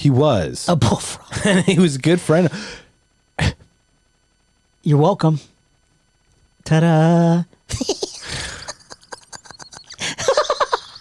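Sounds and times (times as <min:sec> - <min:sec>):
men laughing hard: 0:07.7 - 0:11.0.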